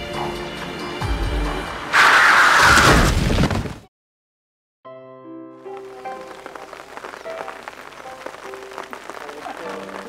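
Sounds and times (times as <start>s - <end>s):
background music: 0.0s - 2.0s, 4.9s - 10.0s
car tyres skidding screech: 1.6s - 3.1s.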